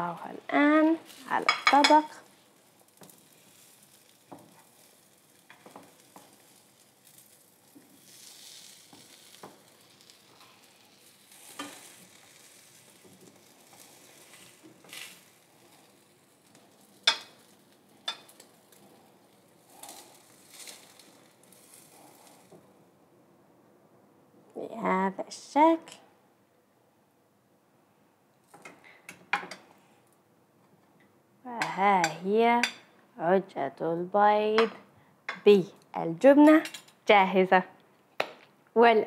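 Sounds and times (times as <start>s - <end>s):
omelette sizzling in a frying pan: 0.2s - 22.9s, 28.4s - 30.2s, 36.6s - 37.1s.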